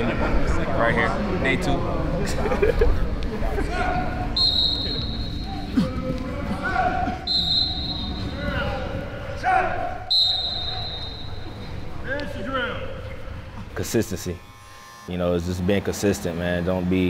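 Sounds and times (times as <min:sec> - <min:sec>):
indistinct voices in a hall: 0:00.0 - 0:17.0
whistle blasts: 0:04.3 - 0:05.6, 0:07.3 - 0:08.6, 0:10.1 - 0:11.7.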